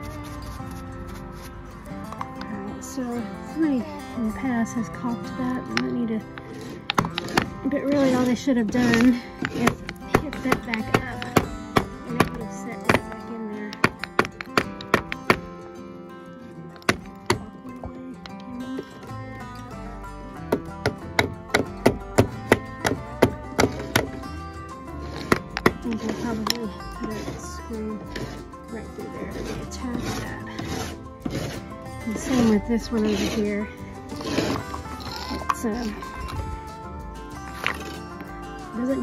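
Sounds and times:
background music: 0.0s - 39.0s
hammer striking wood: 13.8s - 15.5s, 20.5s - 24.2s.

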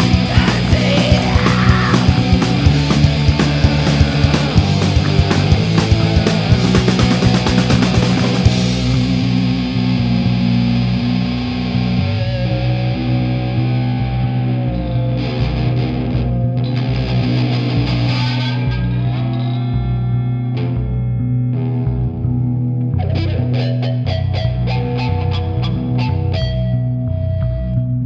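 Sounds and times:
drum hits: 0.0s - 9.5s
distorted electric guitar: 0.0s - 28.0s
held bass notes: 0.0s - 28.0s.

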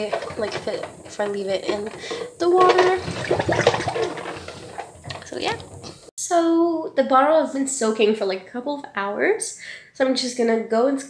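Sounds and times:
water sloshing in a sink: 0.0s - 6.1s.

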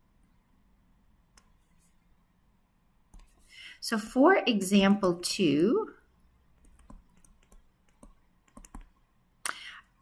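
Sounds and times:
stylus tapping on tablet screen: 6.6s - 9.0s.

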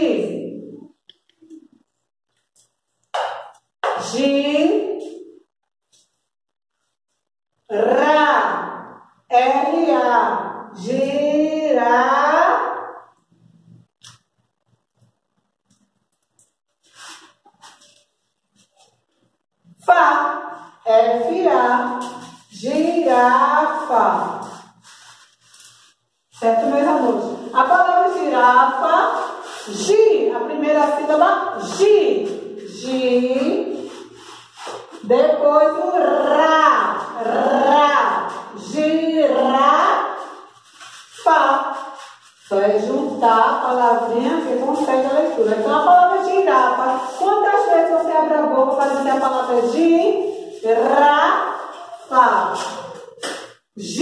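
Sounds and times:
woman vocalizing gliding syllables: 35.3s - 40.2s.

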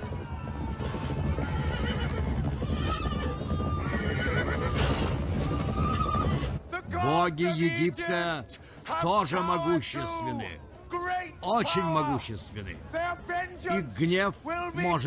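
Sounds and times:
horses whinnying: 0.0s - 6.6s
horses galloping: 0.0s - 7.8s
man speaking loudly: 6.7s - 15.0s.

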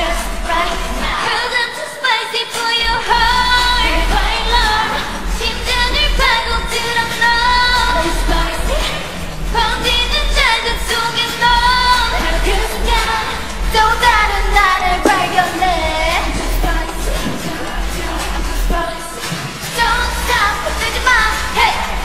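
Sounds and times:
woman singing: 0.0s - 22.0s
low bass pulse: 13.6s - 18.8s.

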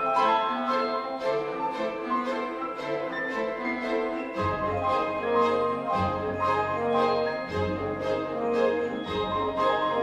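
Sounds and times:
piano and orchestra playing: 0.0s - 10.0s.

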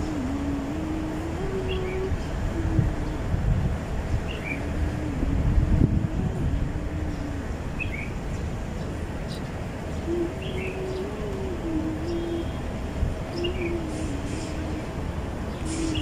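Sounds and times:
person humming a slow tune: 0.0s - 7.9s, 9.9s - 16.0s
wind buffeting microphone: 0.0s - 16.0s.

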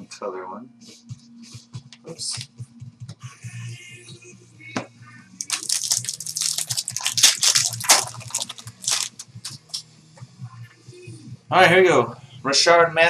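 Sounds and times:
cards and pack rustling and crackling: 5.4s - 9.6s.

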